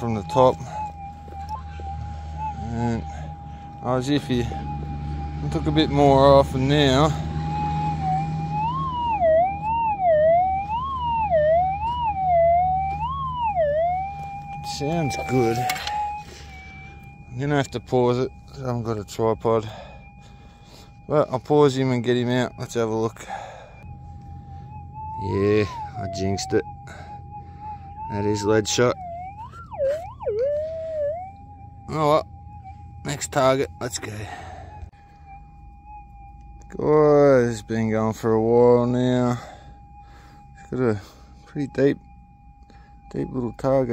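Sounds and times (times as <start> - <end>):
metal detector warbling tone: 0.0 - 3.2, 5.4 - 19.9, 28.0 - 32.2
metal detector threshold tone: 14.6 - 16.8.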